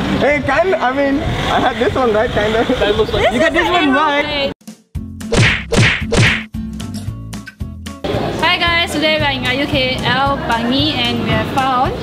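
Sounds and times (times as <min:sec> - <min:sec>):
whip-like hits with falling hiss: 0:05.3 - 0:06.5.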